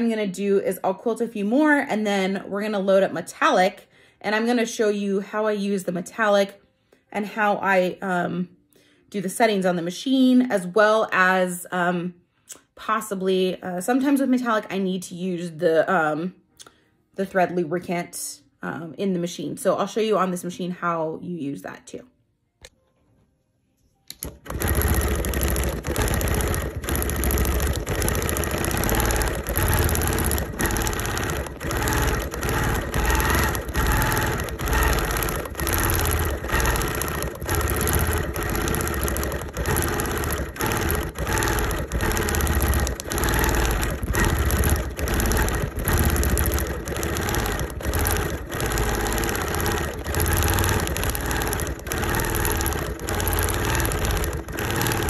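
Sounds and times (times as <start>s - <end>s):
quilting machine stitching: 24.1s - 55.0s.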